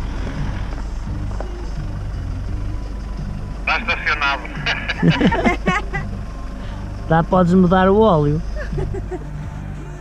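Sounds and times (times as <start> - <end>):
truck engine running at low revs: 0.0 - 10.0
person speaking: 3.7 - 6.0.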